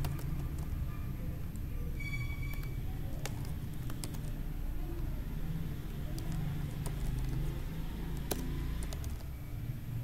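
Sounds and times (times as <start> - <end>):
keyboard typing: 0.0 - 9.4.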